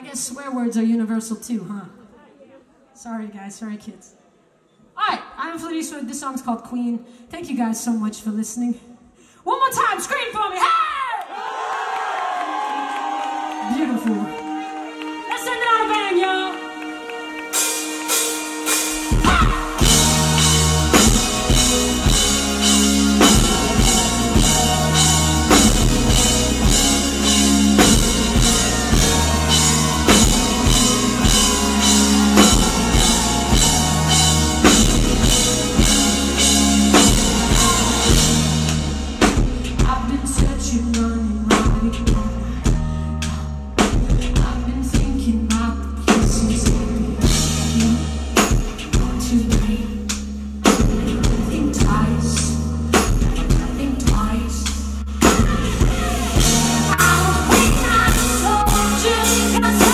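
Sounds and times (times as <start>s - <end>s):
bass guitar: 17.6s - 59.9s
drum kit: 17.6s - 59.9s
person singing: 18.6s - 39.0s, 53.3s - 59.9s.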